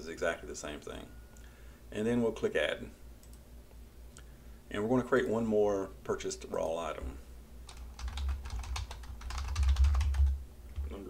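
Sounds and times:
typing on computer keyboard: 7.7 - 11.0.

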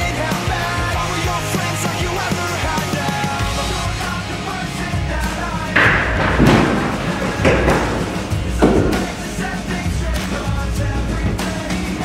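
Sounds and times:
rock music: 0.0 - 12.0
heavy thuds: 3.3 - 12.0.

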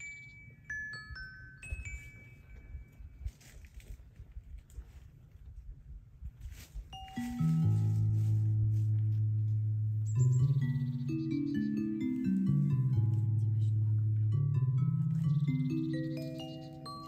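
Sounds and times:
sustained low bass tones: 7.2 - 17.0
slow electronic synthesizer notes: 7.3 - 17.0.

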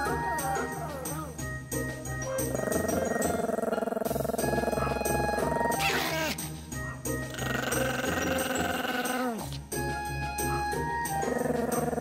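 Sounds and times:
background music: 0.0 - 12.0
dog howling: 7.3 - 9.4.

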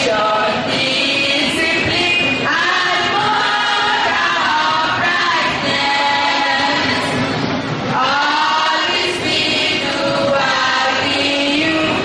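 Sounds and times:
girls choir singing: 0.0 - 7.3, 7.9 - 12.0.

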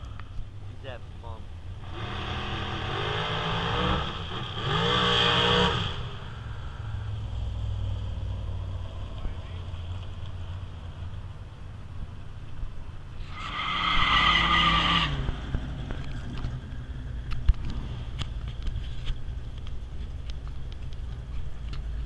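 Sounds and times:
drag car engine accelerating: 1.7 - 11.4, 13.2 - 18.7.

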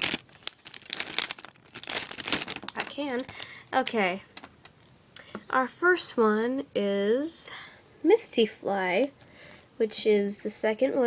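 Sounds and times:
plastic bag crackling: 0.0 - 4.2.

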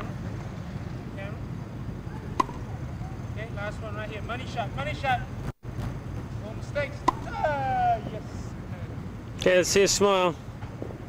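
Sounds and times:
low city rumble: 0.0 - 11.0
tennis racket hitting ball: 2.4 - 2.7, 7.0 - 7.6.

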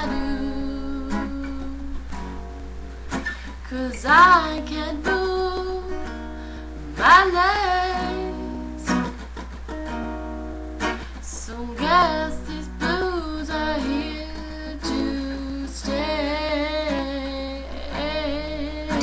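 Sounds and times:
woman singing blues: 0.0 - 9.4, 11.0 - 19.0
strummed acoustic guitar: 0.0 - 19.0.

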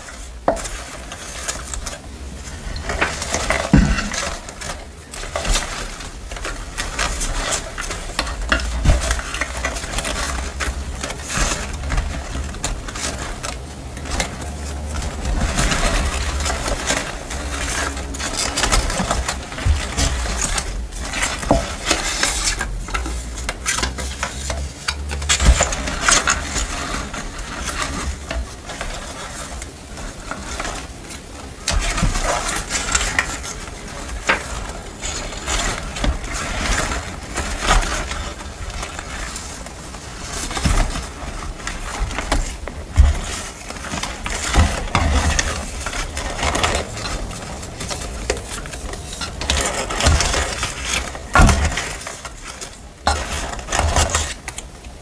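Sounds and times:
paper rustling and crinkling: 0.0 - 55.0.

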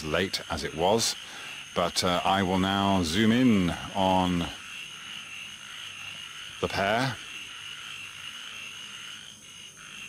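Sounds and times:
frogs and insects calling: 0.0 - 10.0.

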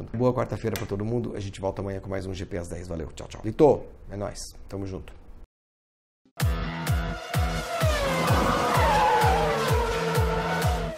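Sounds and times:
electronic music with kick drum: 6.4 - 10.9
race car sound effect: 6.8 - 10.9.

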